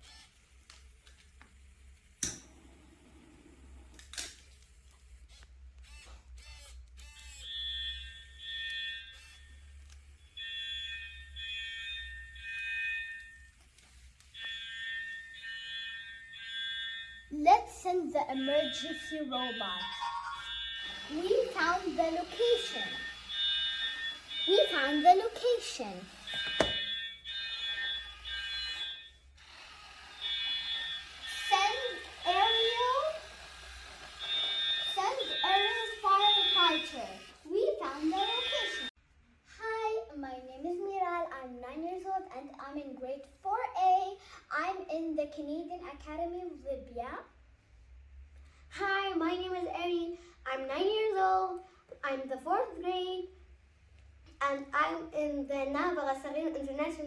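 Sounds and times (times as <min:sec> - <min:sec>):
brief motor whirs: 0:00.0 - 0:01.0, 0:02.5 - 0:07.6, 0:20.8 - 0:38.9
electronic alarm beeps: 0:05.9 - 0:38.9.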